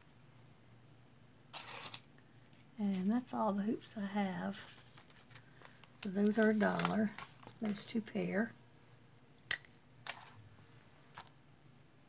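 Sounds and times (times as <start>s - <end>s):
plastic bag rustle: 4.5s - 7.9s.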